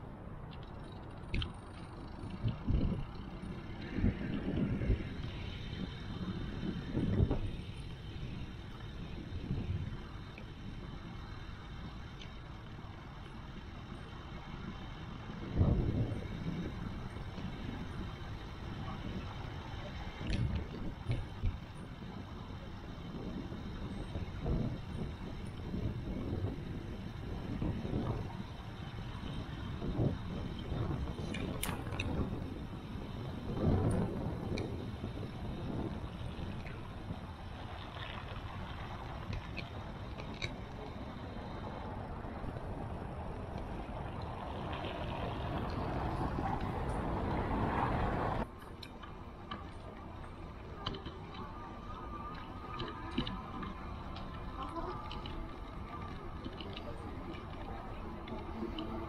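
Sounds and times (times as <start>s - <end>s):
bicycle tyre rumble on asphalt: 0.0s - 59.0s
wind on microphone: 0.0s - 59.0s.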